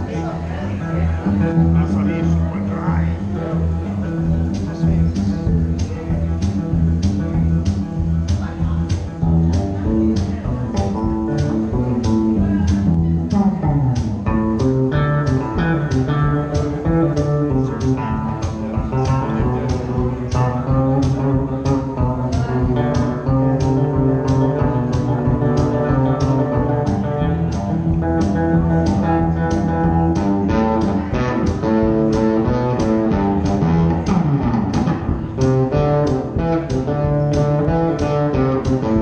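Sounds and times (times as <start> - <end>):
electric guitar riffs: 0.0 - 39.0
steady percussion beat: 4.3 - 39.0.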